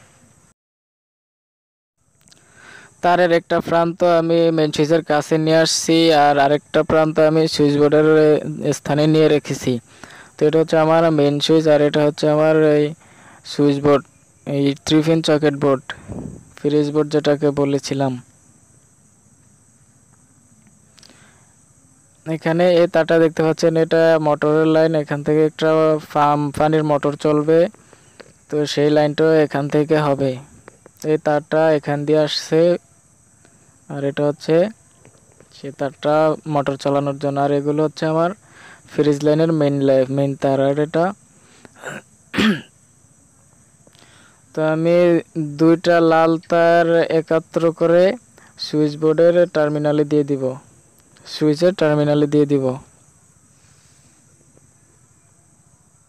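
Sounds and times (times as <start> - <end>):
crickets droning: 0.0 - 0.6, 2.0 - 56.0
man speaking: 3.0 - 18.3, 22.2 - 27.8, 28.5 - 32.8, 33.9 - 34.8, 35.5 - 41.2, 44.5 - 52.9
person clearing throat: 41.8 - 42.7.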